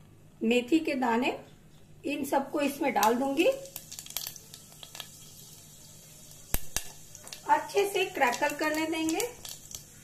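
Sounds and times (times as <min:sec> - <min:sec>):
spices sizzling in hot oil: 0:02.3 - 0:10.0
seeds popping: 0:03.0 - 0:05.3, 0:06.4 - 0:10.0.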